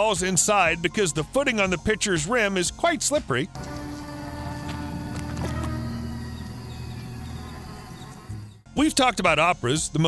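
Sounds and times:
soft background music: 0.0 - 10.0
fly buzzing: 3.6 - 8.6.

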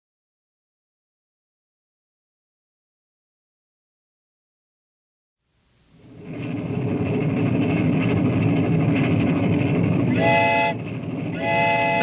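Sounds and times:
train rumbling: 5.6 - 12.0
train whistle blowing: 10.1 - 12.0.

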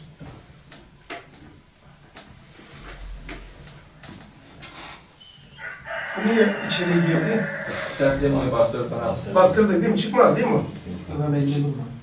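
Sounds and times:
marker squeak: 4.7 - 5.7.

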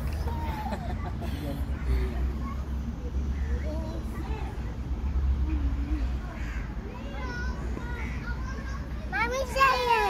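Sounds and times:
children playing: 0.0 - 10.0.

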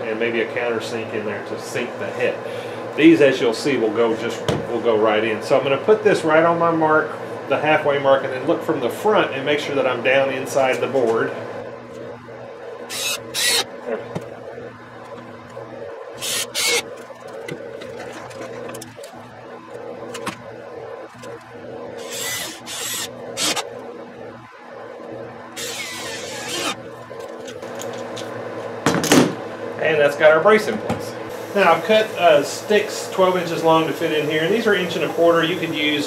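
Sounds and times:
steady low hum: 0.0 - 36.0
cordless drill whirring: 12.9 - 13.7, 16.2 - 16.9, 22.0 - 23.6, 25.6 - 26.8.

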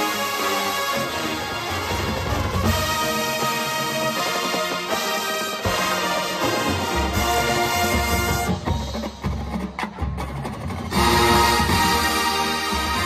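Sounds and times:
drums and percussion: 0.0 - 13.0
marching band brass chords: 0.0 - 13.0.

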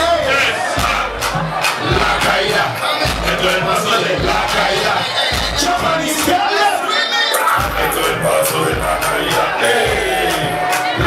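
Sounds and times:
crowd shouting and cheering: 0.0 - 11.0
dancehall beat with thumping bass: 0.0 - 11.0.

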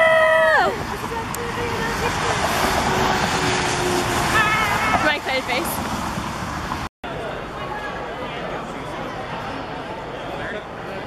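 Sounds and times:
woman shouting: 0.0 - 0.8, 4.4 - 5.3.

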